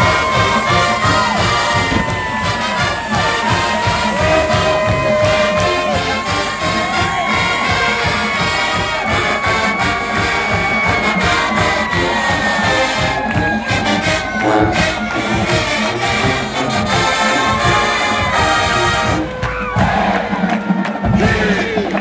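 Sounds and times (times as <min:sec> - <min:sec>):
brass holding long notes: 0:00.0 - 0:19.9
stadium crowd cheering: 0:00.0 - 0:22.0
steady drum beat: 0:00.0 - 0:22.0.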